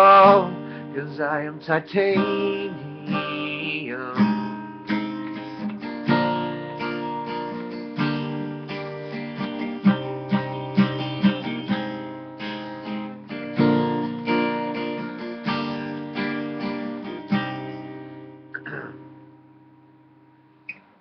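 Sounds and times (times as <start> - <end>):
acoustic guitar strumming chords: 0.0 - 20.9.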